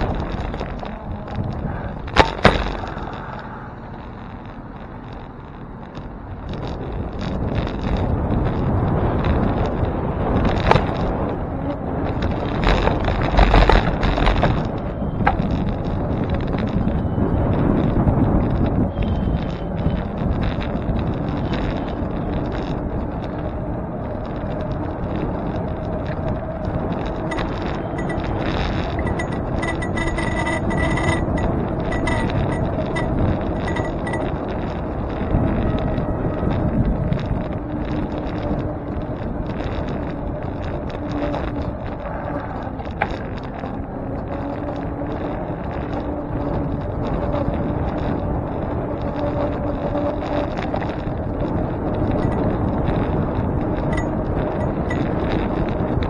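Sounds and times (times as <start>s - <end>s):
tyre and road noise: 0.0s - 56.0s
wind rushing over microphone: 0.0s - 56.0s.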